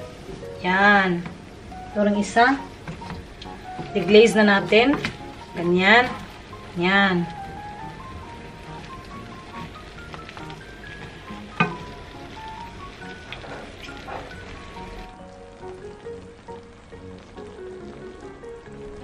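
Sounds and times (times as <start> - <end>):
cheerful background music: 0.0 - 19.0
glaze sizzling in a frying pan: 0.0 - 19.0.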